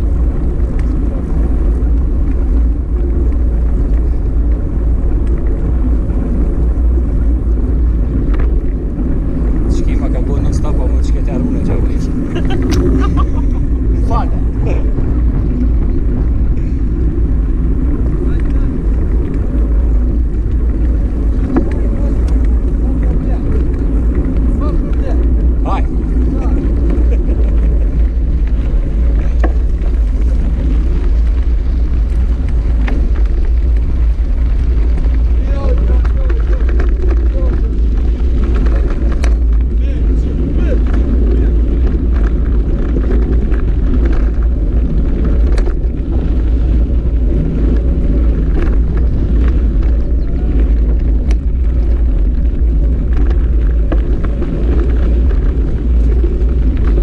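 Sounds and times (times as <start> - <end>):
bike clicks and rattles: 0.0 - 57.0
bike tyres on gravel: 0.0 - 57.0
wind on microphone: 0.0 - 57.0.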